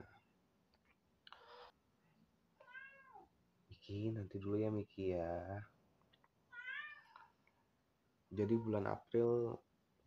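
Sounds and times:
cat meowing: 2.6 - 3.3, 6.5 - 7.3.

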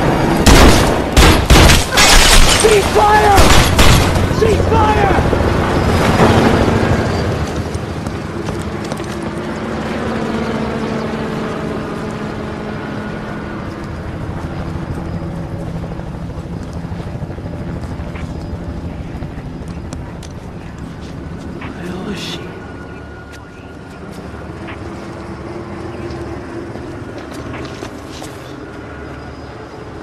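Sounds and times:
helicopter rotor hovering: 0.0 - 30.0.

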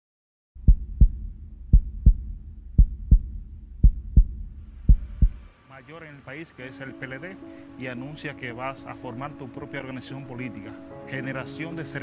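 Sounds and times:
heartbeat lub-dub beats: 0.6 - 5.5
low hum: 0.6 - 5.6.

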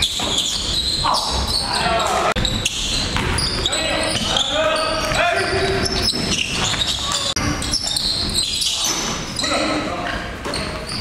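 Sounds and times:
players calling out: 0.2 - 10.8
basketball bouncing on hardwood floor: 3.1 - 4.3.

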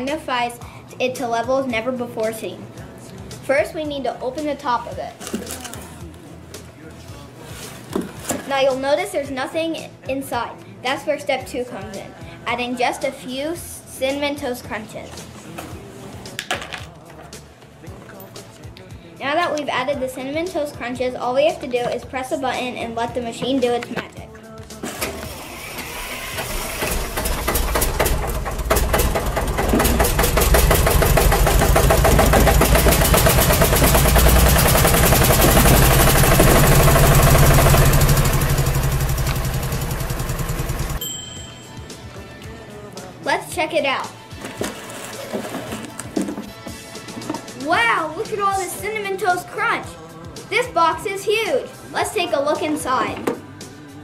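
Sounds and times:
soft background music: 0.0 - 38.8, 41.0 - 54.0.

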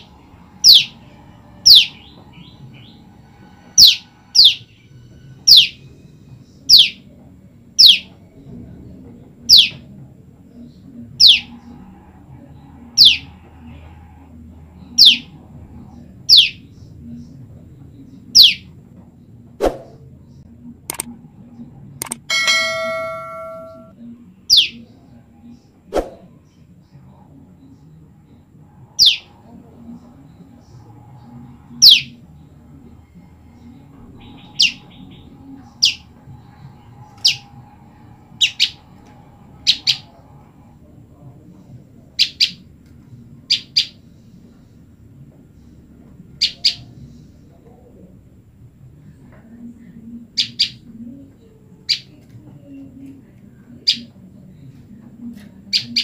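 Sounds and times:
click sound effect: 22.0 - 22.3
bell-like ding: 22.3 - 23.9.

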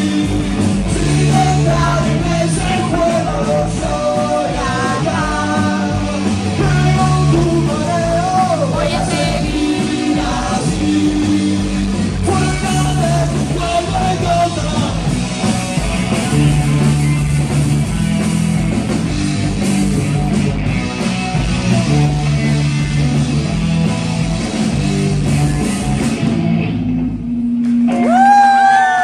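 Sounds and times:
live rock band playing: 0.0 - 29.0.

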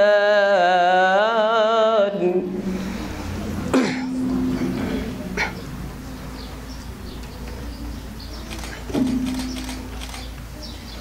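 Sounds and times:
man reciting through a pa system: 0.0 - 2.7.

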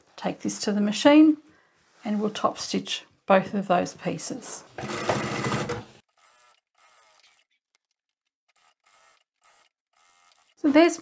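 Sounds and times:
sewing machine running: 4.8 - 7.3, 8.6 - 10.6.

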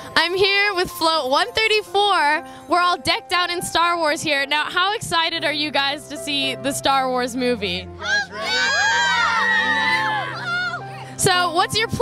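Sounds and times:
children shouting and cheering: 8.0 - 11.0.

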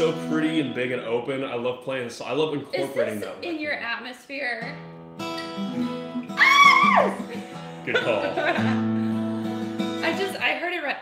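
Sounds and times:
acoustic guitar picking: 0.0 - 1.1, 4.6 - 10.4
high-pitched squeal of delight: 5.8 - 7.3.

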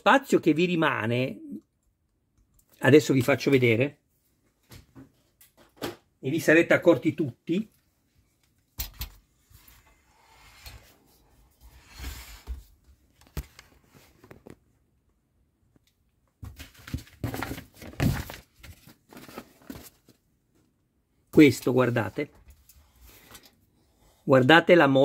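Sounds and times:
plastic model car being handled: 13.1 - 14.6.

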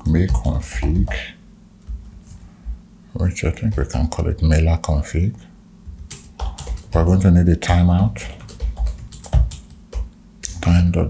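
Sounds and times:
computer keyboard typing: 0.0 - 1.2, 5.9 - 10.1.

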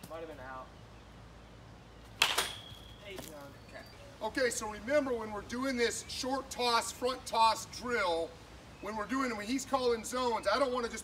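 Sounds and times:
baseball bat cracking ball: 2.2 - 2.8.

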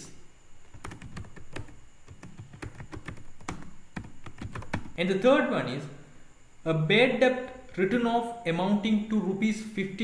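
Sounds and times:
typing on computer keyboard: 0.7 - 5.0.

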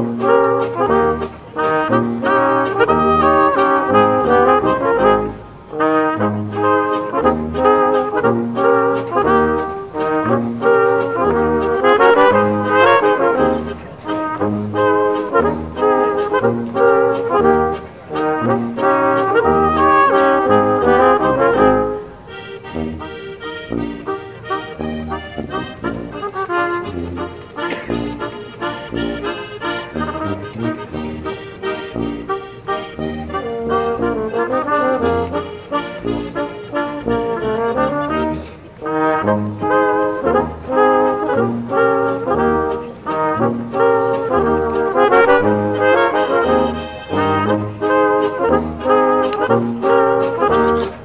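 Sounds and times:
accordion: 0.0 - 51.0
double bass: 0.0 - 51.0
flugelhorn and trumpet melody: 0.0 - 51.0
folk brass band playing: 0.0 - 51.0
tuba bass notes: 0.0 - 51.0.

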